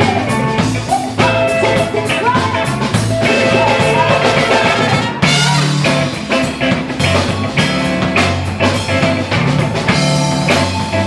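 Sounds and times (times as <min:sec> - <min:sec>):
woman singing: 0:00.0 - 0:05.8
congas: 0:00.0 - 0:11.0
drum kit: 0:00.0 - 0:11.0
electric guitar: 0:00.0 - 0:11.0
keyboard: 0:00.0 - 0:11.0
trumpet: 0:03.2 - 0:06.1.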